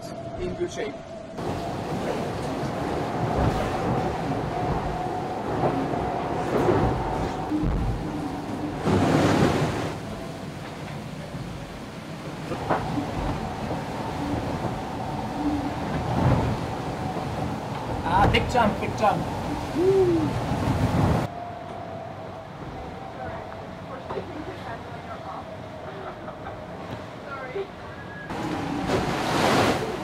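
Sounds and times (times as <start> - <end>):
water rushing along hull: 0.0 - 30.0
steady hum: 1.0 - 30.0
wind noise: 1.3 - 21.6.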